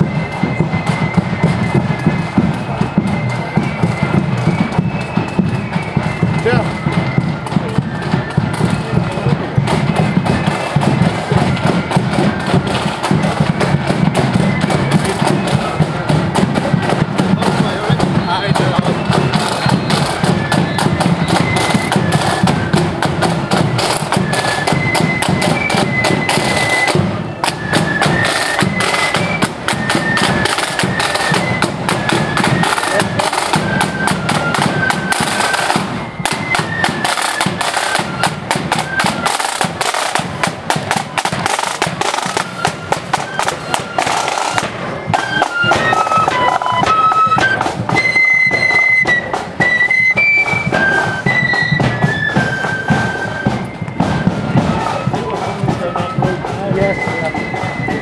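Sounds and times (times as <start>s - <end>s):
flute band melody: 0.0s - 58.0s
side drums and bass drum beat: 0.0s - 58.0s.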